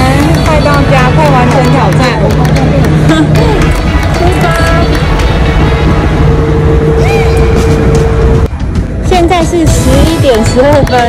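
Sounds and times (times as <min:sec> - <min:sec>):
wind on microphone: 0:02.0 - 0:11.0.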